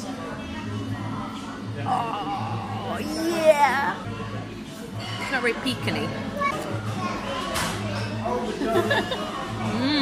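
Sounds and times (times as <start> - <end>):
people talking in cafe: 0.0 - 10.0.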